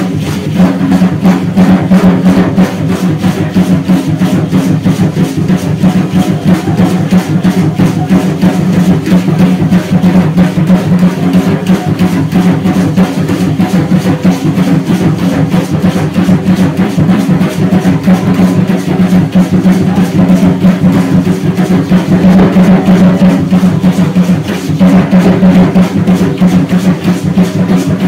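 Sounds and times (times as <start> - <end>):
fast steady drumming: 0.0 - 28.0.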